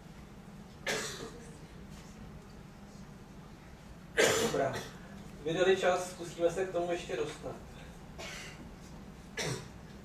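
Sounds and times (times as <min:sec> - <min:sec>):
person coughing: 0:00.8 - 0:01.4, 0:04.2 - 0:05.0, 0:08.2 - 0:08.6, 0:09.4 - 0:09.8.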